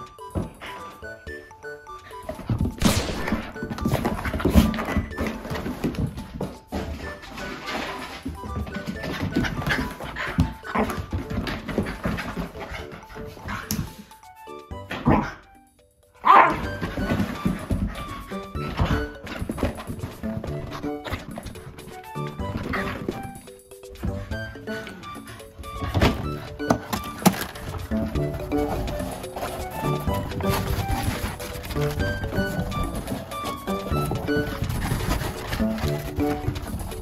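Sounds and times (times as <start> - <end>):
background music: 0.0 - 37.0
dog noises: 16.2 - 37.0
dog scrambling and pawing on rug: 26.8 - 37.0.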